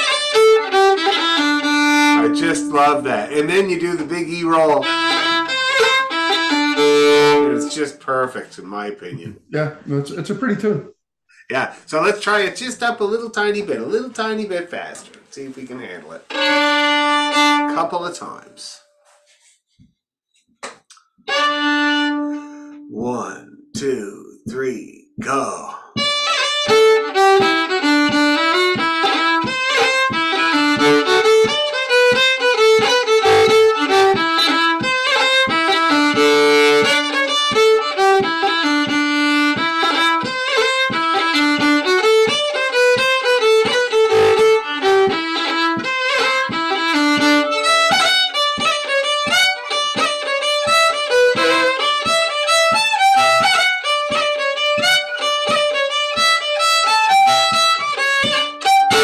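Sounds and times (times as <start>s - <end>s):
lively fiddle tune on violin: 0.0s - 9.2s, 11.5s - 18.8s, 21.2s - 24.0s, 26.0s - 59.0s.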